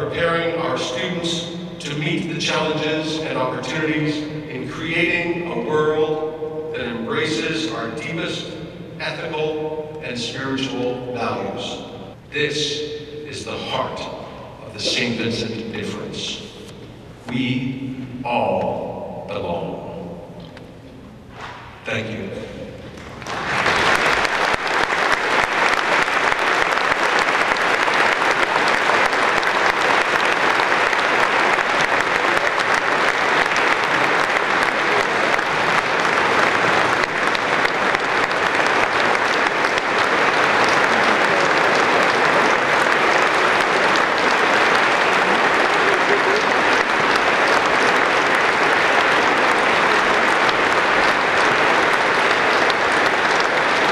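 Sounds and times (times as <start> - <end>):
congregation applauding: 22.9 - 53.9.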